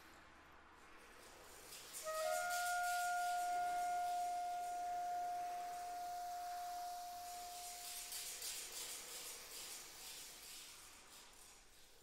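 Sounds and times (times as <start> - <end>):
soprano saxophone long soft note: 2.0 - 8.2.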